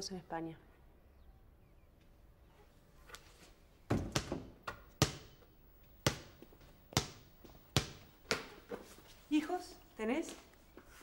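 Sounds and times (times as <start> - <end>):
basketball bouncing on hard floor: 3.9 - 5.3, 6.0 - 8.5.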